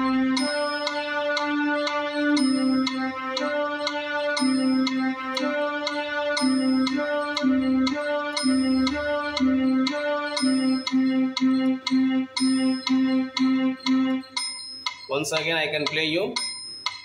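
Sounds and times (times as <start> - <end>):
keyboard piano melody: 0.0 - 15.8
higher metronome chime: 0.0 - 17.0
metronome clicking: 0.0 - 17.0.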